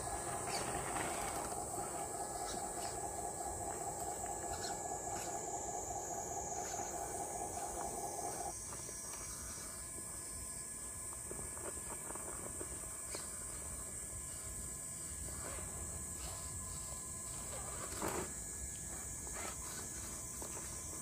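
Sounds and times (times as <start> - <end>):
electric motor whining: 0.0 - 8.5
insects buzzing: 0.0 - 21.0.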